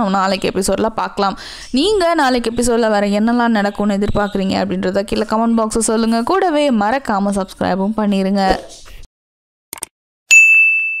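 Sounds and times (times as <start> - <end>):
bright bell ding: 10.3 - 11.0.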